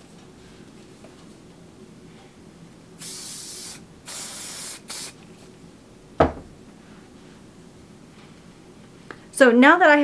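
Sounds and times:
spray can hissing: 0:03.0 - 0:05.2.

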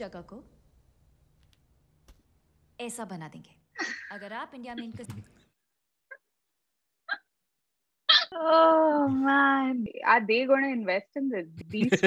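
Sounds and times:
person speaking: 0:04.1 - 0:05.4, 0:08.6 - 0:09.7, 0:11.4 - 0:12.0.

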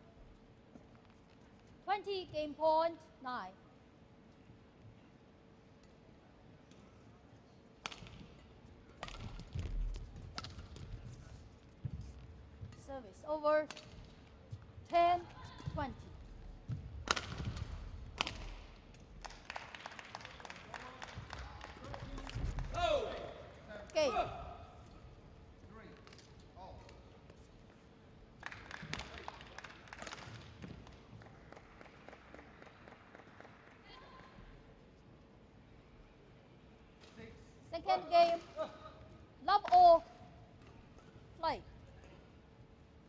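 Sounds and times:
low hall noise: 0:00.0 - 0:43.0
racket striking shuttlecock: 0:07.8 - 0:09.7, 0:17.0 - 0:18.6.

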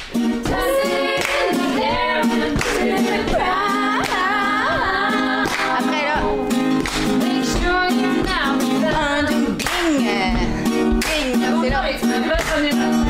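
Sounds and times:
hand claps: 0:00.0 - 0:13.0
woman singing unaccompanied: 0:00.5 - 0:06.6, 0:07.2 - 0:13.0.

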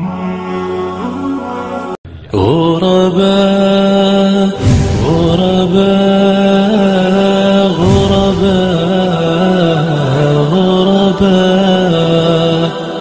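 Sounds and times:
rushing noise: 0:04.6 - 0:10.3.

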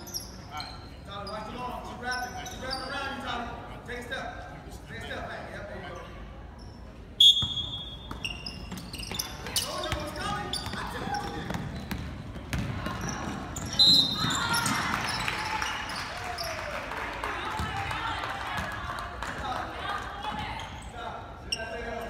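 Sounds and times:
referee's whistle blowing: 0:07.2 - 0:08.6, 0:13.6 - 0:14.7
spectators' voices echoing: 0:09.4 - 0:21.5
basketball bouncing on hardwood: 0:10.6 - 0:14.8.

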